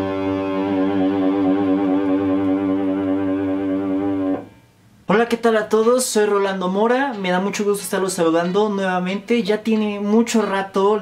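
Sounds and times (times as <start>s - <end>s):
electric guitar sustained note: 0.0s - 4.7s.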